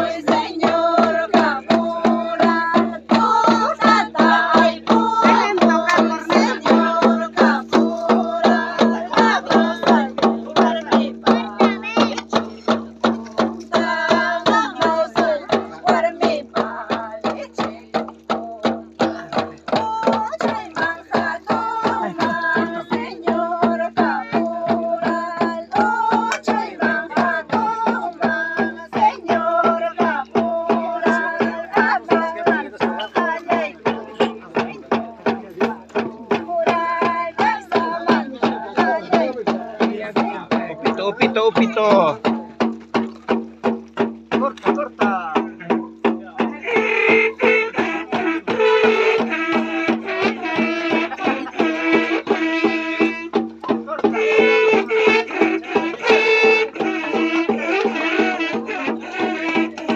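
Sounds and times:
women singing in unison: 0.0 - 41.1, 46.4 - 59.9
small hand drum beats: 0.0 - 59.9.

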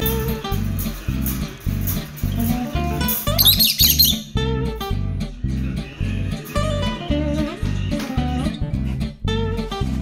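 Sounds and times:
acoustic guitar music with beat: 0.0 - 5.1
lovebirds chirping: 3.4 - 4.3.

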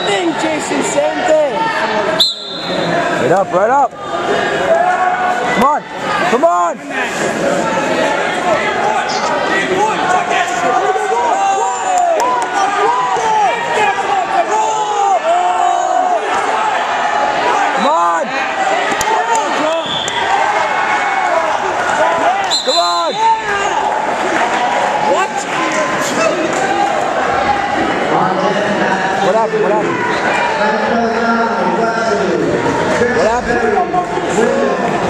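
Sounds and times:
voices in gym: 0.0 - 35.0.

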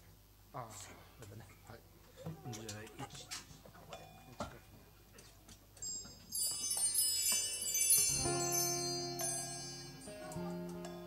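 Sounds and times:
metal bar chimes ringing: 5.8 - 11.0.

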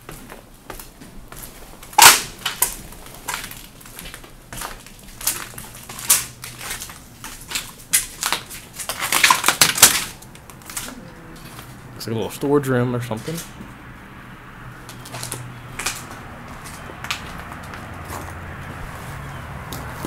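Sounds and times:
footsteps crunching on debris: 0.0 - 11.8, 14.8 - 20.0.

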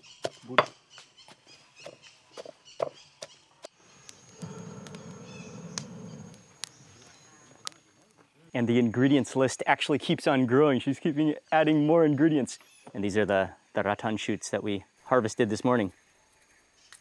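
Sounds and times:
wood fire crackling: 3.7 - 9.5.

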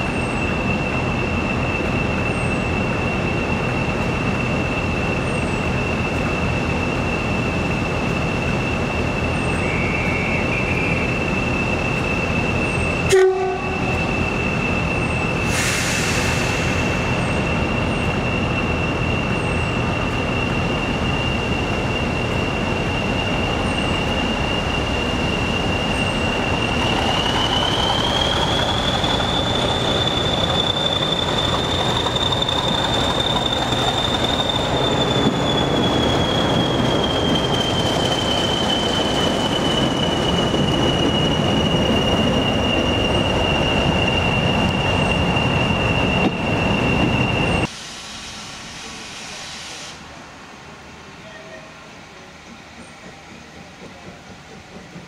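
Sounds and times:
diesel locomotive engine rumble: 0.0 - 55.0
turbocharger whistle: 9.6 - 47.7.

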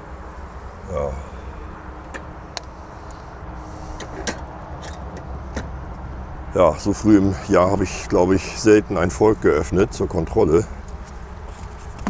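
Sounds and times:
bees humming: 0.0 - 12.0
low steady rumble: 0.0 - 12.0.

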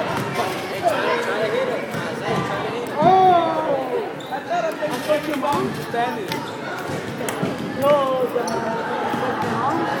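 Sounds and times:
chatter of boys' voices: 0.0 - 10.0.

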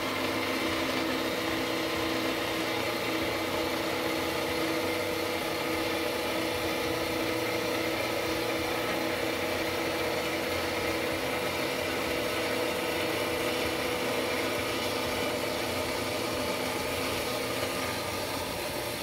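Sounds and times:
band saw cutting metal: 0.0 - 19.0.

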